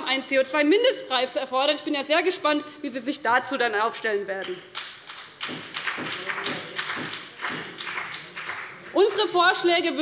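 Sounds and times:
people clapping: 4.4 - 9.8.

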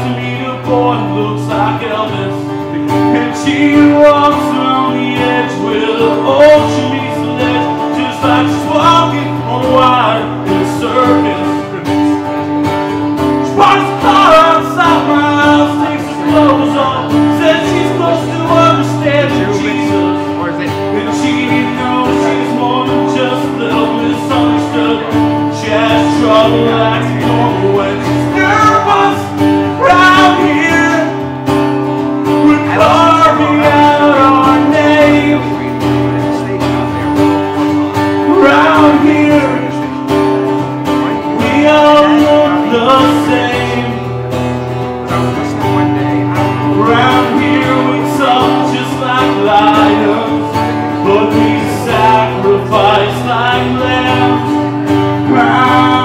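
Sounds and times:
acoustic guitar chords: 0.0 - 56.0
man singing: 0.0 - 56.0.

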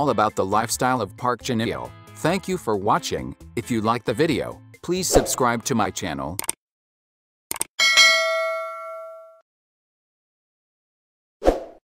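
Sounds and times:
notification bell ding: 7.8 - 9.4.

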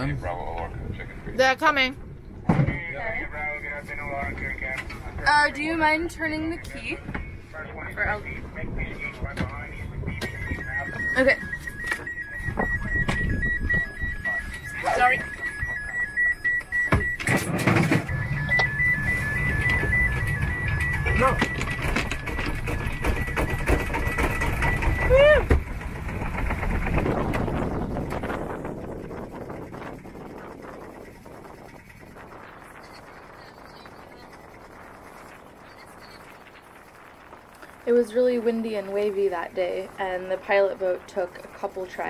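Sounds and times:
boat engine starting and rumbling: 0.0 - 42.0
wind: 0.0 - 42.0
high-pitched alarm beep: 9.8 - 25.4.

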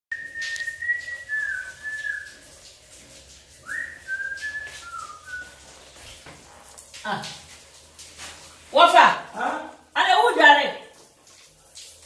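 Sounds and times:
person whistling a tune: 0.1 - 2.3, 3.6 - 5.5.

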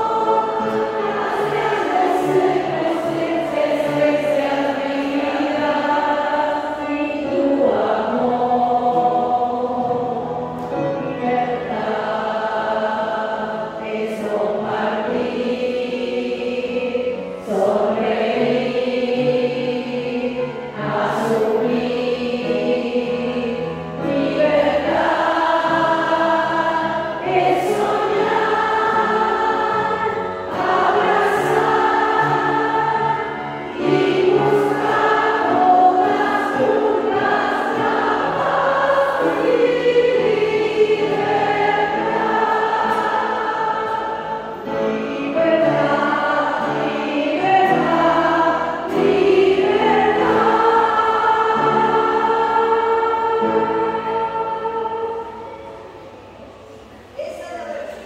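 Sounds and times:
women singing a hymn: 0.0 - 57.1.

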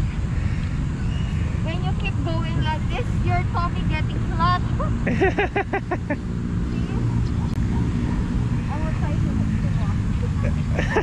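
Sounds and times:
low background rumble: 0.0 - 11.0
person laughing: 5.0 - 6.2, 10.4 - 11.0.

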